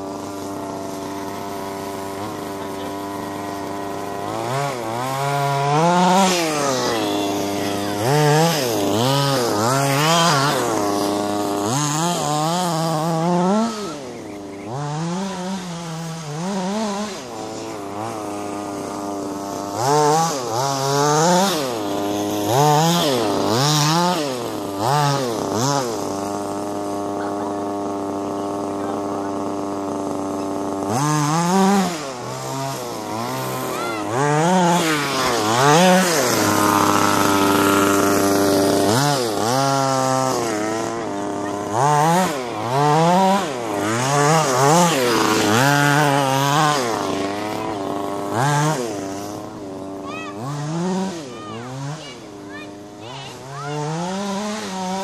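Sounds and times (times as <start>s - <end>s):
small two-stroke engines revving: 0.0s - 55.0s.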